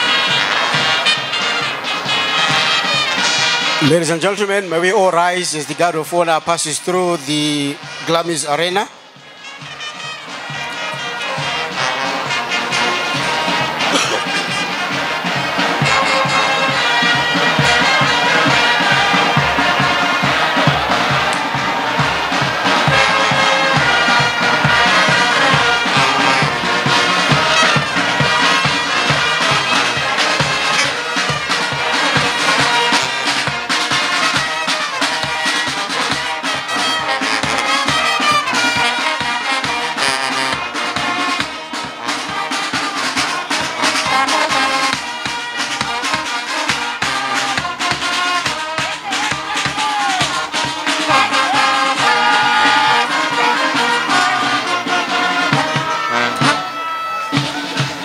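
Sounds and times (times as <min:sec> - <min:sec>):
brass band playing a march: 0:00.0 - 0:58.0
low drum beat: 0:12.7 - 0:30.6.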